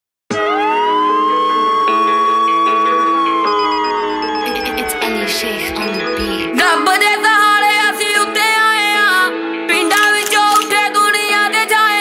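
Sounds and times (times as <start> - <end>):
siren-like rising tone: 0.3 - 6.2.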